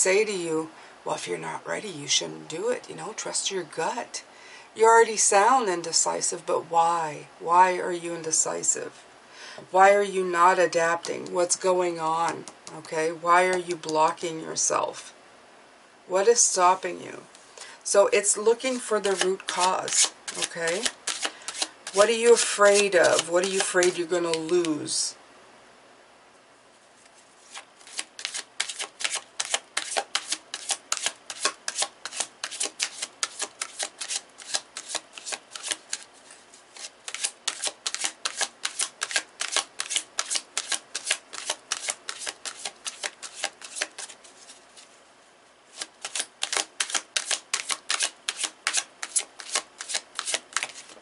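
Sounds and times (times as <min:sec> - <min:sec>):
cards being shuffled: 0:18.7 - 0:24.8, 0:27.0 - 0:45.0, 0:45.7 - 0:51.0.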